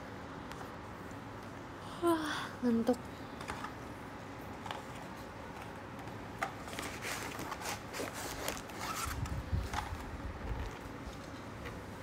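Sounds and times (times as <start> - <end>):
scratching and rustling: 6.4 - 11.8.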